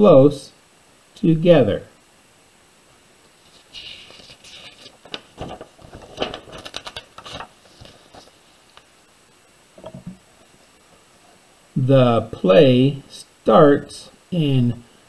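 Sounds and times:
book pages turning: 0:03.4 - 0:08.9
crisp paper ticks: 0:03.5 - 0:08.9.

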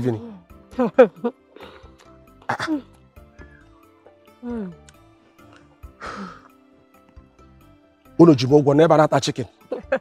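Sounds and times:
soft background music: 0:00.0 - 0:10.0
woman clearing throat: 0:02.4 - 0:03.0.

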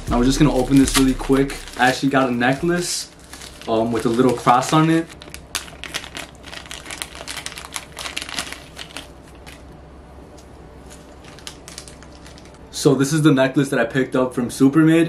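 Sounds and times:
plastic packaging crinkling: 0:00.3 - 0:09.8, 0:10.8 - 0:12.7.

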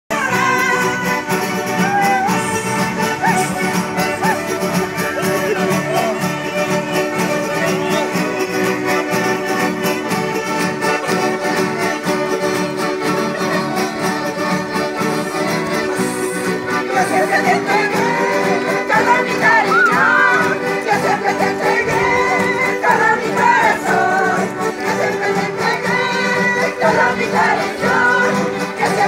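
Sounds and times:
folk band with guitars and violin: 0:00.1 - 0:29.0.

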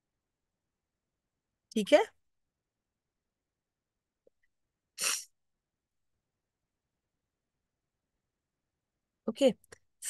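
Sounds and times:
woman sneezing: 0:05.0 - 0:05.3.

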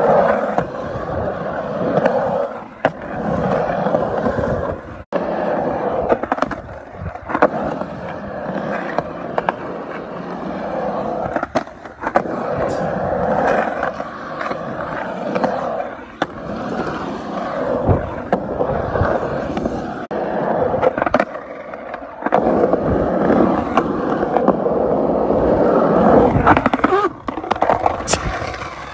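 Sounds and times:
skateboard wheels rolling on concrete: 0:00.0 - 0:28.9.

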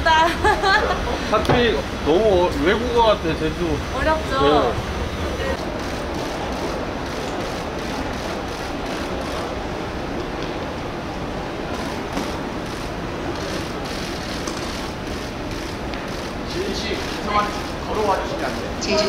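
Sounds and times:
busy airport terminal noise: 0:00.0 - 0:19.0.

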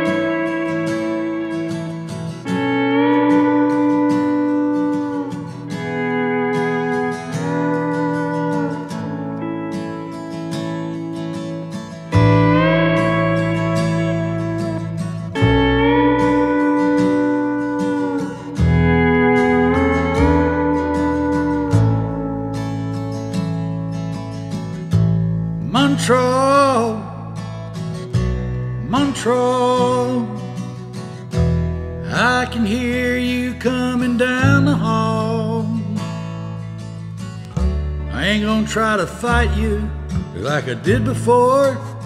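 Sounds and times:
bass: 0:00.0 - 0:42.0
guitar: 0:00.0 - 0:42.0
steel guitar sliding notes: 0:00.0 - 0:42.0.

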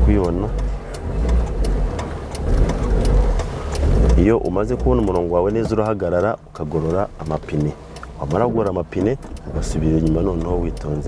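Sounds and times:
car engine running: 0:00.0 - 0:11.0
light clicks ticking: 0:00.0 - 0:11.0
road rumble: 0:00.0 - 0:11.0.

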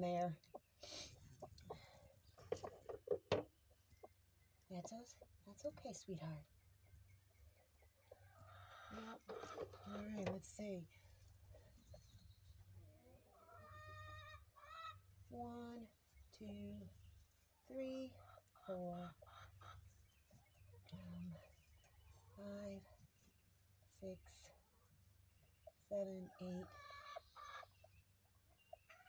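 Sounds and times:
hen clucking: 0:07.5 - 0:10.8, 0:12.8 - 0:15.7, 0:18.2 - 0:22.4, 0:25.4 - 0:29.0.

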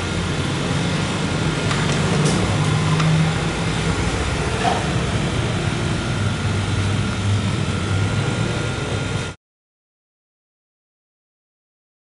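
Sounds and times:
faint high whine: 0:02.5 - 0:09.4.

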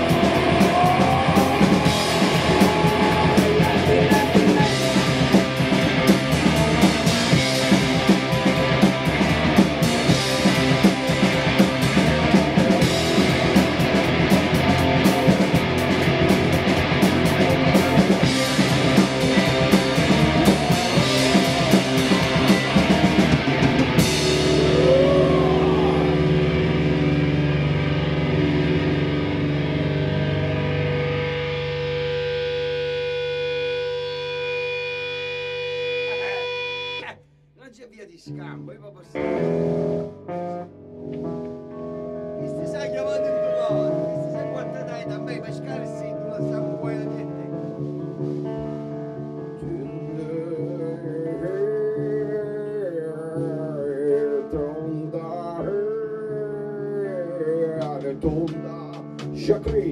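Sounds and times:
drum kit with crashing cymbals: 0:00.0 - 0:24.8
distorted electric guitars: 0:00.0 - 0:37.2, 0:39.1 - 0:59.9.

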